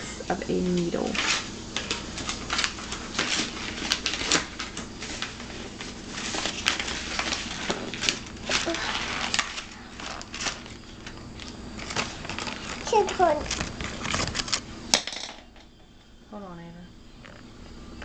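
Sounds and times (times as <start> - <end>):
voice: 0.2 - 1.2, 12.9 - 13.5.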